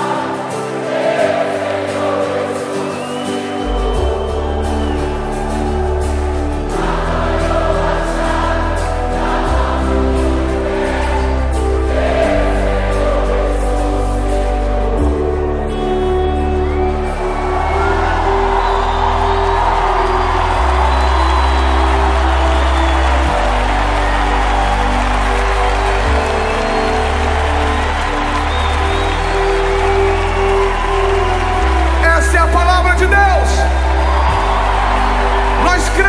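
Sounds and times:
crowd cheering and singing: 0.0 - 36.0
keyboard pad and bass chords: 0.0 - 36.0
man calling out over speakers: 32.0 - 33.8, 35.6 - 36.0.

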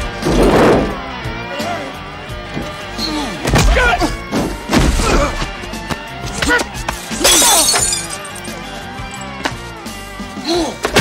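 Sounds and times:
action film score: 0.0 - 7.3
glass bottle shattering: 7.2 - 9.3.

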